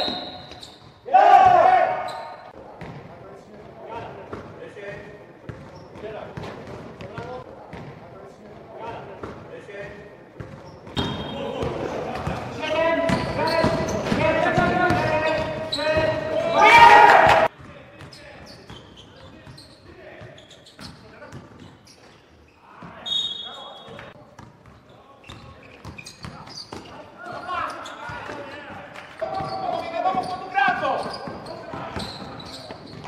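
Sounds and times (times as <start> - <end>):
shouting and cheering: 1.1 - 2.1, 16.2 - 17.5
basketball bouncing on gym floor: 2.4 - 8.0, 9.2 - 16.3
players calling out: 11.0 - 17.5.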